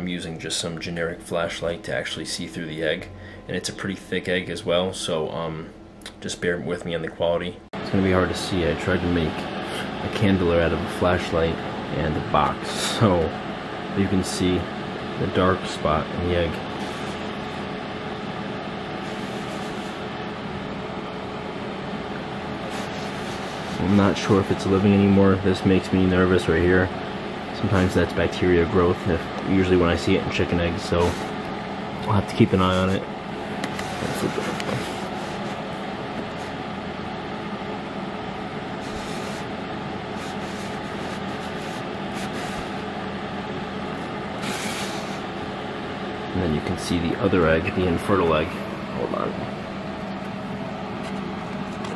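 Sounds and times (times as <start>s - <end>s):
machine hum: 0.0s - 51.9s.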